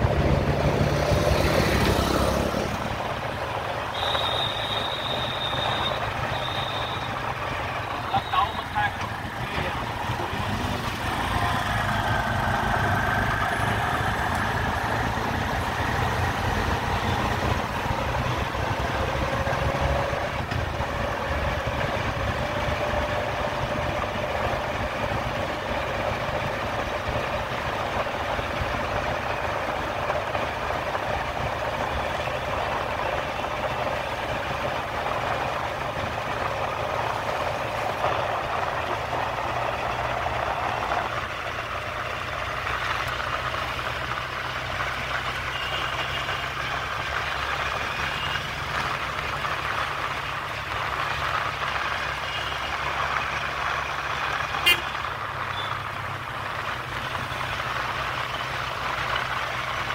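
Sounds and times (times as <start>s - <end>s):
city traffic: 0.0s - 59.9s
motorcycle engines: 0.0s - 59.9s.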